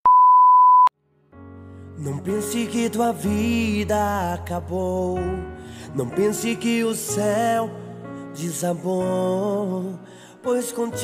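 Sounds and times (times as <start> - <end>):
test-tone beep: 0.0 - 0.9
quiet music: 1.3 - 11.0.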